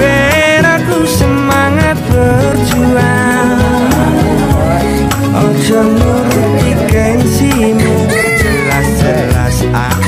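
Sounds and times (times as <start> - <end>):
pop song with steady beat: 0.0 - 10.0
baby crying: 7.8 - 9.3.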